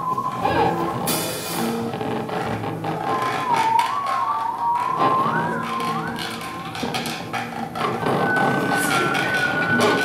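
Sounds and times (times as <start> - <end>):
theremin wavering melody: 0.0 - 10.0.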